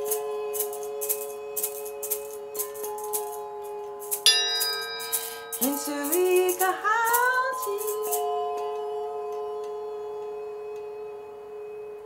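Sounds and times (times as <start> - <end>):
hand shaker beat: 0.0 - 3.4, 4.0 - 8.4
chime bars ringing: 4.3 - 6.8.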